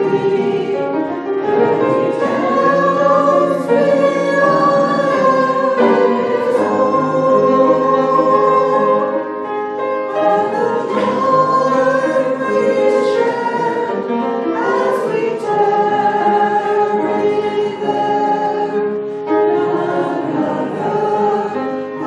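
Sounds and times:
women singing in harmony: 0.0s - 22.0s.

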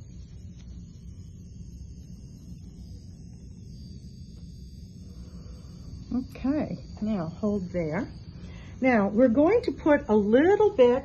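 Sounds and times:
massager buzzing: 0.0s - 11.0s.

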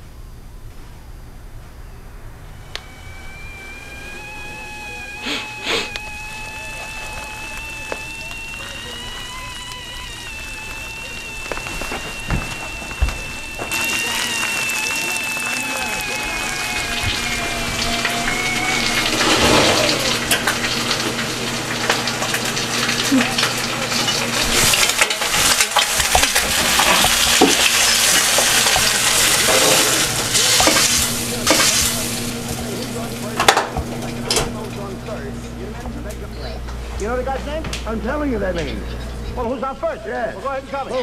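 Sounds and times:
kettle whistling: 1.8s - 35.4s
food frying in a pan: 2.8s - 35.6s.

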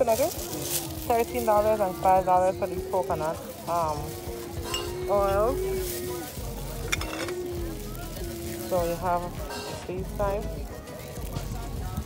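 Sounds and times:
glass bottles clinking: 4.6s - 5.7s, 6.8s - 7.5s.

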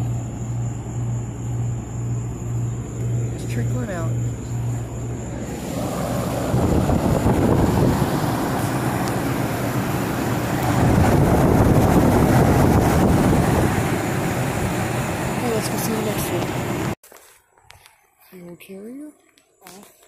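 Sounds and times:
heat pump fan air rushing: 0.0s - 17.0s.

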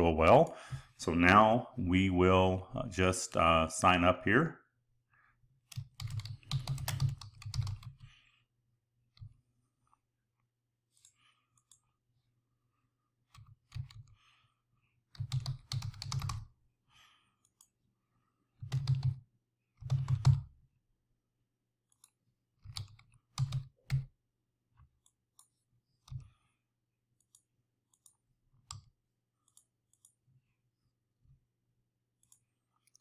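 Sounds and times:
keyboard typing: 5.7s - 8.1s, 13.3s - 14.0s, 15.1s - 16.5s, 18.6s - 19.2s, 19.8s - 20.5s, 21.9s - 24.1s.

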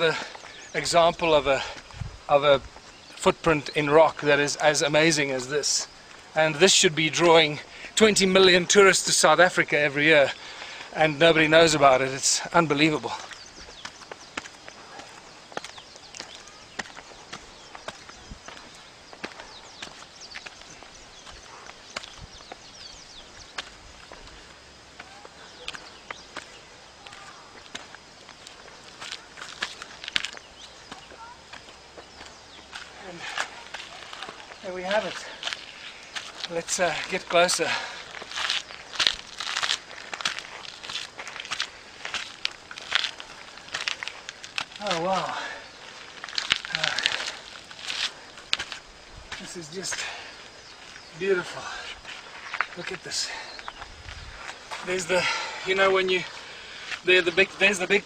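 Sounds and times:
footsteps on rock: 12.7s - 58.0s.

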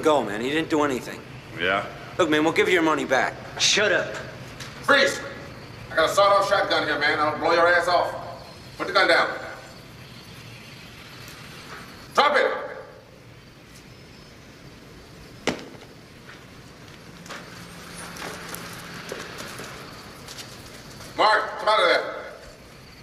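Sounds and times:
man shouting: 12.2s - 12.8s.

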